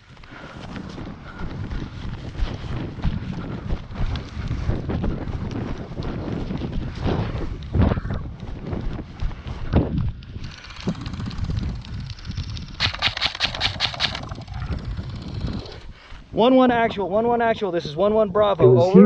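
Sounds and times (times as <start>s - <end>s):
running footsteps in dry grass: 0.0s - 16.4s
wind buffeting microphone: 0.0s - 19.0s
rapid airsoft rifle shots: 12.8s - 14.6s.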